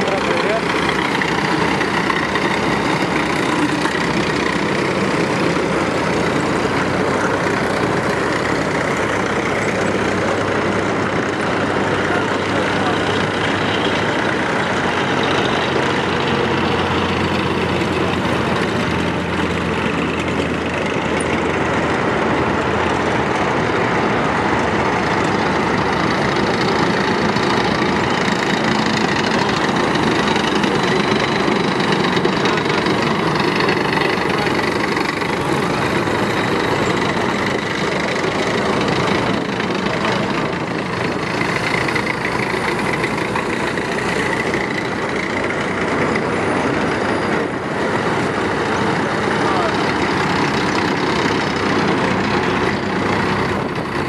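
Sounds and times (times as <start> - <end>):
heavy military vehicle engines droning: 0.0 - 54.0.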